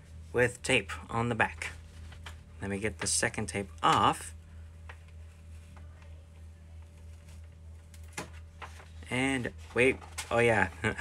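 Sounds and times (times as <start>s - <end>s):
steady low hum: 0.0s - 11.0s
paper crackles: 6.8s - 11.0s.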